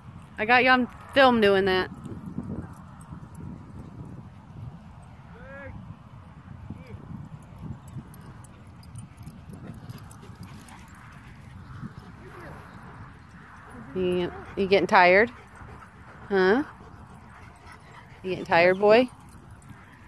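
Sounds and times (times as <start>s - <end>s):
wind on microphone: 0.0s - 20.0s.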